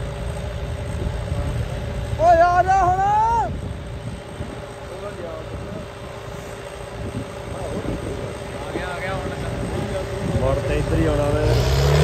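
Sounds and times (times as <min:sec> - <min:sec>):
tractor engine rumbling: 0:00.0 - 0:12.0.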